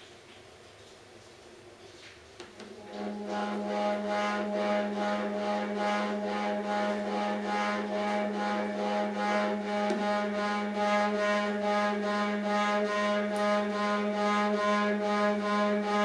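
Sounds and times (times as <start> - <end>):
electronic drone with held chords: 2.7 - 16.0
rhythmic electronic pulse: 2.7 - 16.0.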